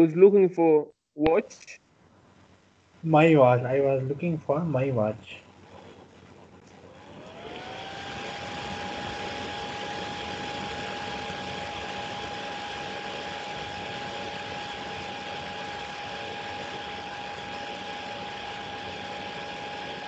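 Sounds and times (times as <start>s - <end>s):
background hiss and hum: 0.0s - 20.0s
constant high whine: 0.0s - 20.0s.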